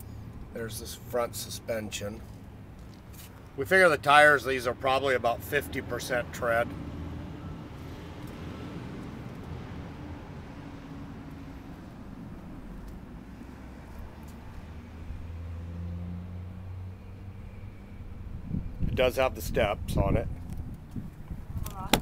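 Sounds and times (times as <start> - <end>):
vehicle engine rumbling: 0.0 - 22.0.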